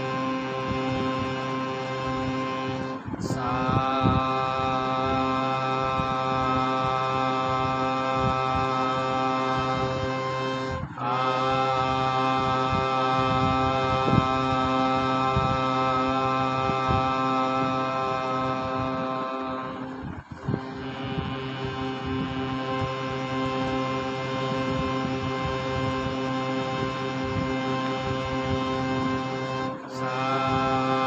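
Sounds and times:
harmonium long held notes: 0.0 - 31.0.

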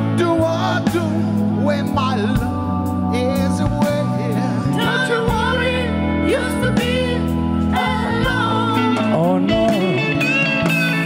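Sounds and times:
lead electric guitar bending notes: 0.0 - 11.0
live rock band: 0.0 - 11.0.

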